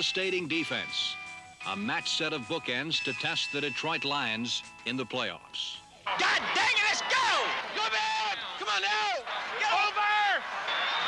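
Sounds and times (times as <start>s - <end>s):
man shouting calls: 6.1s - 10.5s.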